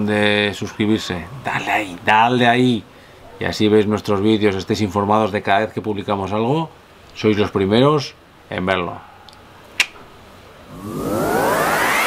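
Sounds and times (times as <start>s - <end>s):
rising hiss: 10.7s - 12.0s
rising synth tones: 10.7s - 12.0s.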